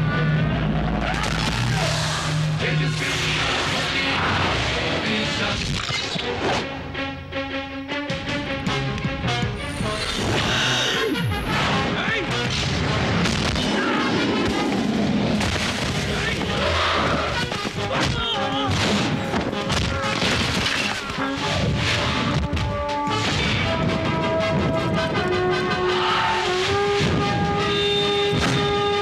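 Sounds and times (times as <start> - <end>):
dramatic background music: 0.0 - 29.0
booming impacts and crashes: 11.5 - 29.0.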